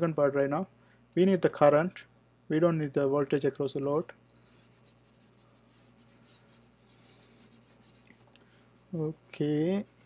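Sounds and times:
stylus scratching on tablet: 4.3s - 10.0s.

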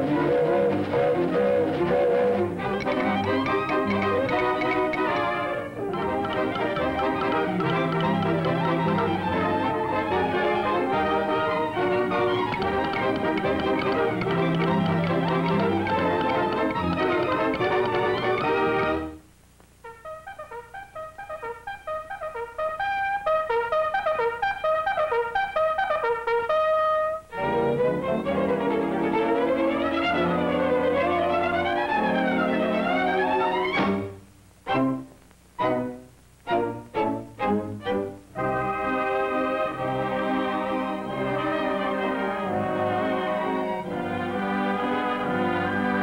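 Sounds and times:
brassy swing band music: 0.0s - 19.2s, 19.8s - 46.0s.

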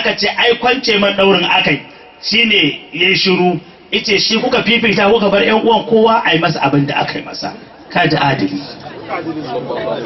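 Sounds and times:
man talking into a microphone: 0.0s - 10.0s.

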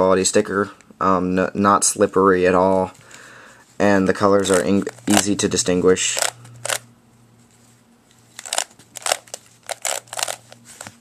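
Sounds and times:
puzzle cube layers clicking: 8.4s - 10.6s.

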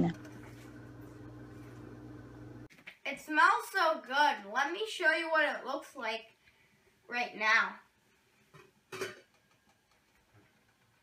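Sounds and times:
person speaking: 0.0s - 0.3s.

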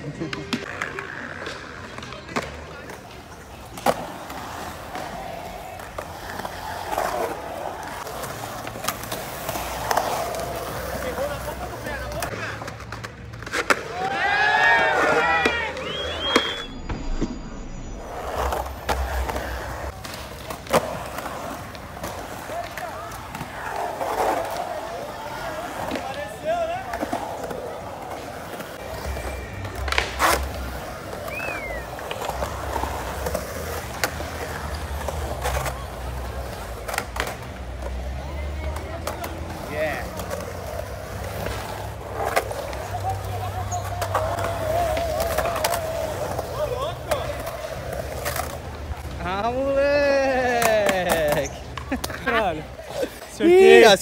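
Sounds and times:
skateboard wheels rolling on concrete: 0.0s - 54.0s
skateboard clacks: 0.2s - 16.7s, 18.2s - 49.1s, 49.9s - 53.1s.

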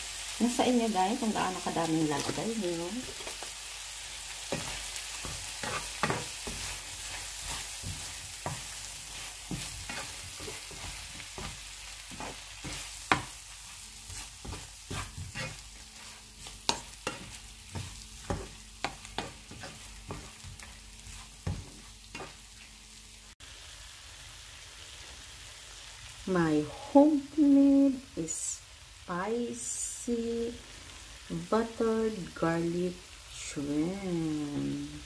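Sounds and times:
shrimp sizzling in a pan: 0.0s - 35.0s
utensil knocking and scraping a pan: 4.5s - 22.5s.

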